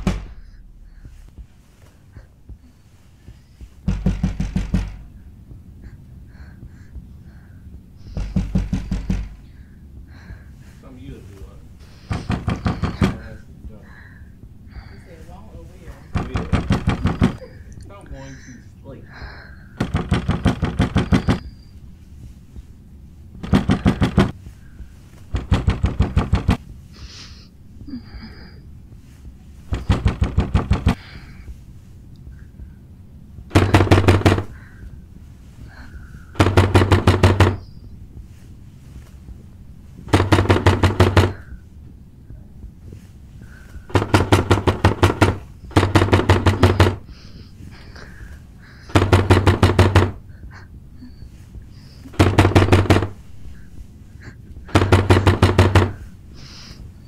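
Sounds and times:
pounding on a door: 0.0s - 1.5s, 3.6s - 5.3s, 8.0s - 9.6s, 12.1s - 13.4s, 16.1s - 17.4s, 19.8s - 21.5s, 23.4s - 24.4s, 25.3s - 26.6s, 29.7s - 31.0s, 33.5s - 34.6s, 36.4s - 37.7s, 40.1s - 41.6s, 43.9s - 47.1s, 48.9s - 50.3s, 52.1s - 53.3s, 54.7s - 56.1s.

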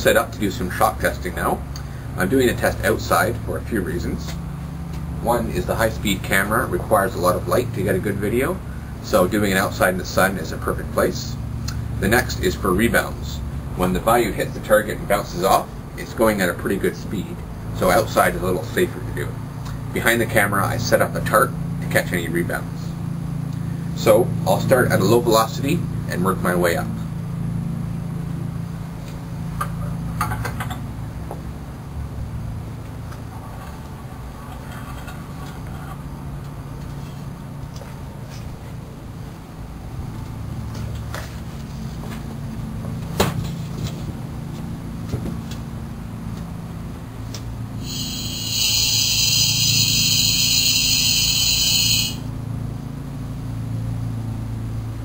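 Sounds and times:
steady low hum: 0.0s - 55.0s
loud high-pitched tone: 47.8s - 52.4s.

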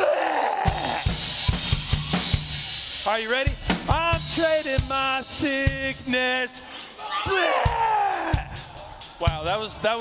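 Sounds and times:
drum kit playing a beat: 0.6s - 10.0s.

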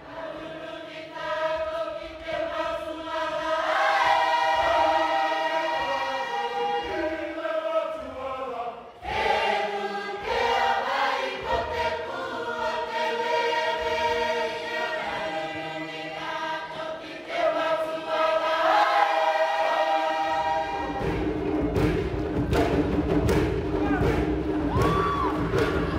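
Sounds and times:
choir singing in harmony: 0.0s - 25.9s.

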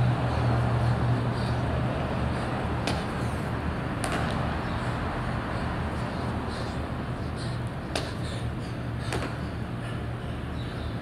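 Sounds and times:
low mechanical hum: 0.0s - 11.0s
thuds on concrete floor: 2.8s - 3.1s, 4.0s - 4.4s, 9.1s - 9.4s.

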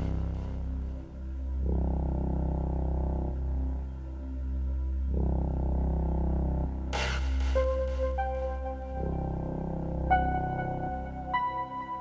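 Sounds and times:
deep synth bass note: 0.0s - 12.0s
sustained synth pad chords: 0.0s - 12.0s.

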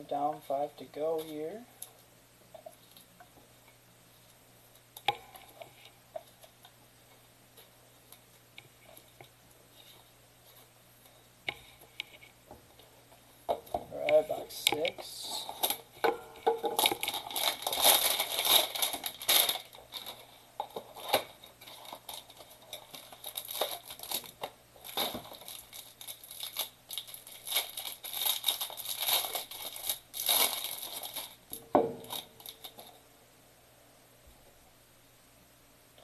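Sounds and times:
plastic wrapper tearing and crinkling: 16.7s - 33.0s.

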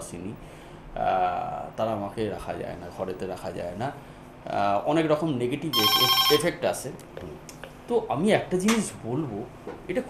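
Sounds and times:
telephone ringing: 5.7s - 6.6s.

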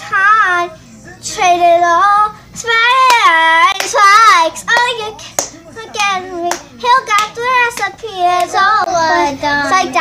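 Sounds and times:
girl singing unaccompanied: 0.0s - 10.0s
sharp hand claps: 4.7s - 8.6s.

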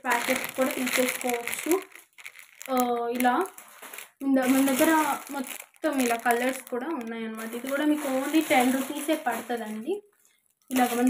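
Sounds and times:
plastic packets crinkling: 0.0s - 11.0s.

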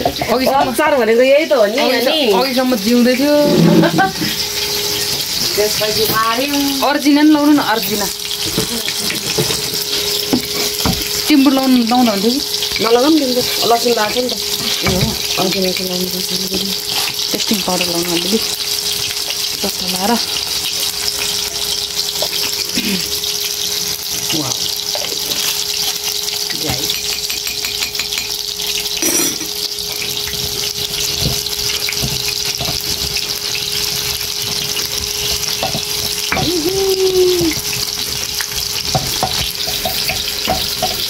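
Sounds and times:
hot oil sizzling: 0.0s - 41.0s.

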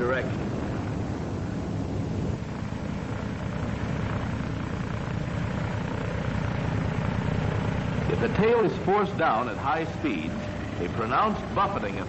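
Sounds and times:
propeller plane engine rumbling: 0.0s - 12.0s.

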